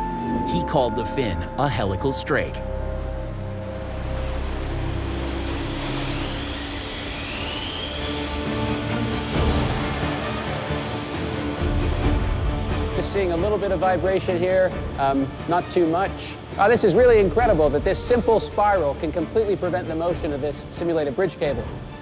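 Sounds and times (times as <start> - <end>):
background music: 0.0 - 22.0
rising whine: 0.0 - 22.0.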